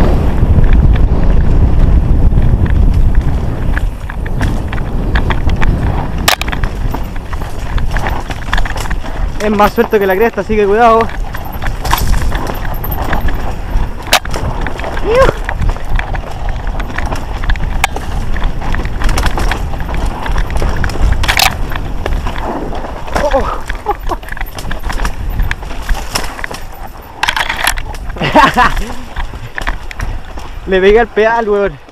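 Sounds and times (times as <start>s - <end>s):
tyres on dirt: 0.0s - 31.9s
wind rumble: 0.0s - 31.9s
bike rattling knocks: 2.4s - 31.0s
rider vocal sounds: 9.0s - 11.7s, 12.3s - 16.8s, 22.4s - 25.3s.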